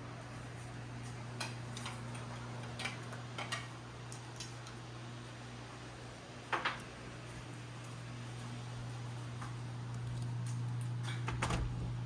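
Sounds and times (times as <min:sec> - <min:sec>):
low electrical hum: 0:00.0 - 0:12.0
footsteps on tile floor: 0:07.2 - 0:09.6.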